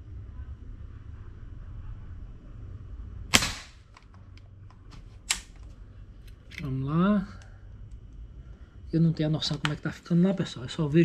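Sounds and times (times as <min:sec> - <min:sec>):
air rifle shot: 0:03.3 - 0:03.8
rifle action clicks: 0:05.2 - 0:05.7.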